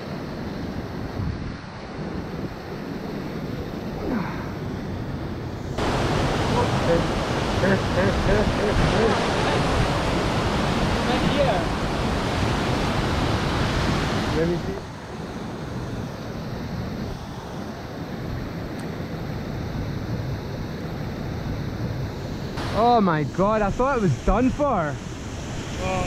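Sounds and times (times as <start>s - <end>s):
rushing stream and waterfall: 0.0s - 26.0s.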